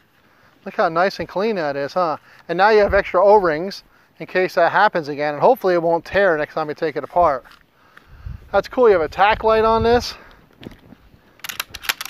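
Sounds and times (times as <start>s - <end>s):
shotgun parts clicking: 10.6s - 12.0s.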